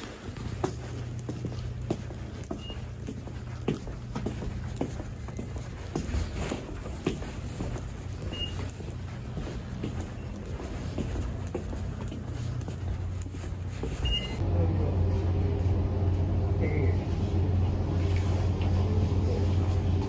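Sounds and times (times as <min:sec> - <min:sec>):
footsteps on a hard floor: 0:00.0 - 0:14.4
low steady hum: 0:00.0 - 0:18.4.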